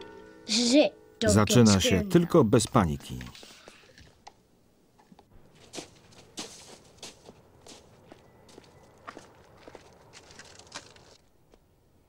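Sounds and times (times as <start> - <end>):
footsteps crunching through snow: 5.4 - 11.3.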